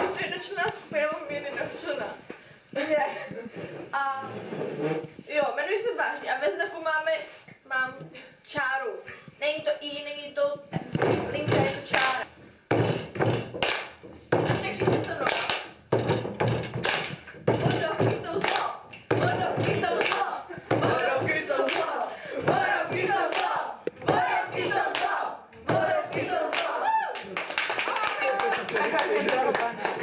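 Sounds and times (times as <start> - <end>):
hand claps and thumps: 10.7 - 30.0
group chanting in rhythm: 17.6 - 26.9.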